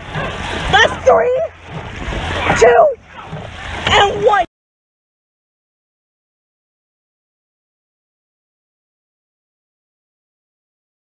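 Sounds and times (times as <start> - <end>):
water washing along boat: 0.0 - 4.5.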